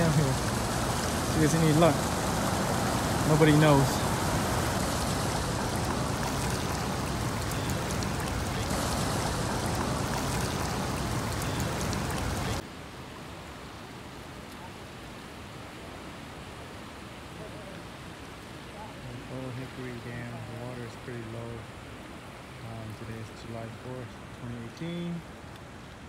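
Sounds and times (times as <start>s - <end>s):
rushing water or wind noise: 0.0s - 26.0s.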